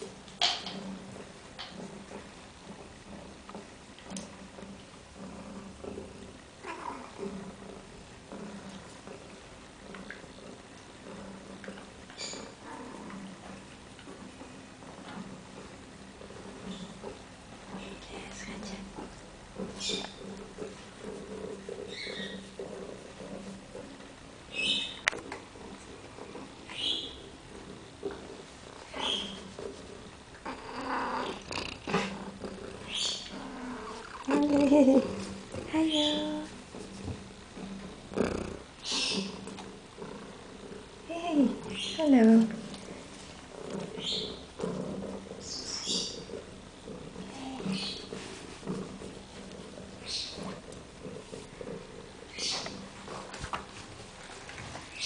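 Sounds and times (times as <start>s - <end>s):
cat purring: 0.0s - 55.0s
pet low rumbling vocal sound: 0.0s - 55.0s.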